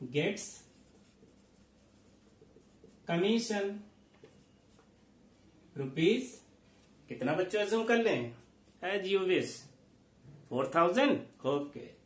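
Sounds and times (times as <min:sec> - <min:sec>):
marker pen scratching on whiteboard: 0:00.4 - 0:03.5, 0:04.1 - 0:05.2.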